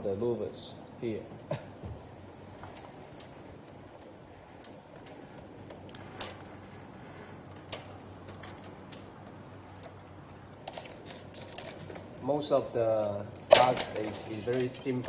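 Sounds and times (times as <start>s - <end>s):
plastic louvers clicking: 13.4s - 15.0s.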